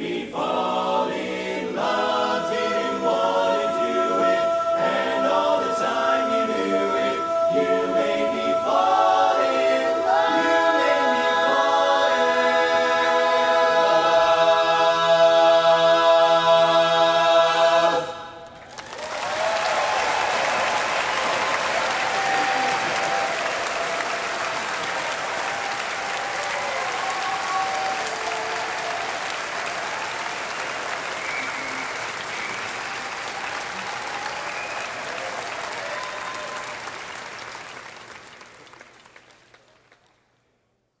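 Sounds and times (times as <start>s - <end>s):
audience applauding: 18.4s - 40.2s
cheers and whoops: 18.7s - 37.2s.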